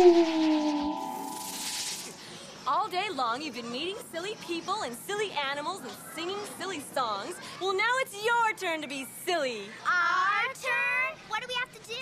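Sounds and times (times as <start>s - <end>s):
hissing rattling shimmer effect: 0.0s - 2.2s
woman speaking: 2.7s - 9.8s.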